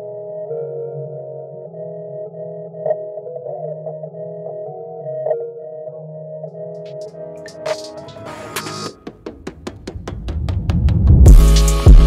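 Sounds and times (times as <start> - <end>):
instrumental beat with sustained chords: 0.0 - 10.4, 11.0 - 12.0
low steady bass line: 11.3 - 12.0.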